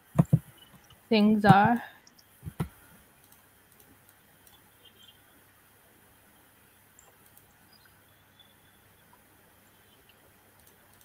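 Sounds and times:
computer mouse clicks: 2.0s - 5.1s, 6.9s - 7.6s, 10.0s - 11.0s.

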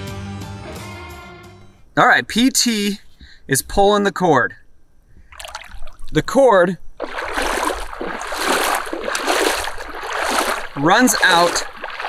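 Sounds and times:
shallow water splashing and sloshing: 5.2s - 12.0s.

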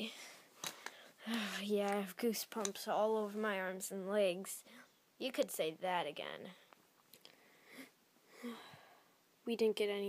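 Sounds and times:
faint soft breaths: 0.0s - 1.9s, 4.6s - 5.0s, 6.4s - 9.3s.

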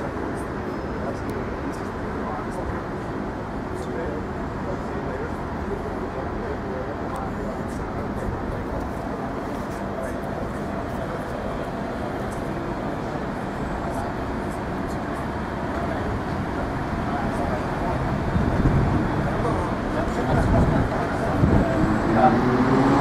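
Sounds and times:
people's voices: 0.0s - 23.0s
vehicle noise: 0.0s - 23.0s.

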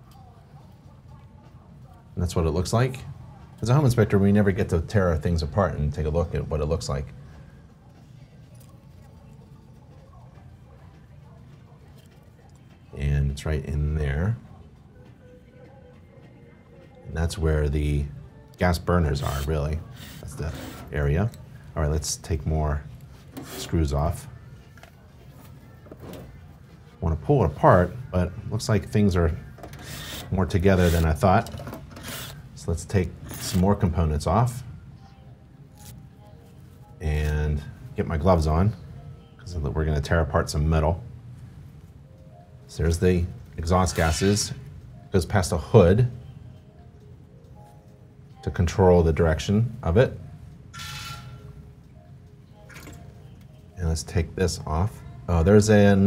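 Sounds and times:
low room hum: 0.0s - 56.0s
gloves rustling: 35.7s - 38.5s.

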